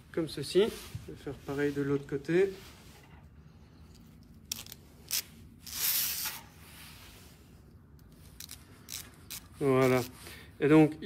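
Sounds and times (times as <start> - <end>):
wire rope scraping: 4.5 - 10.2.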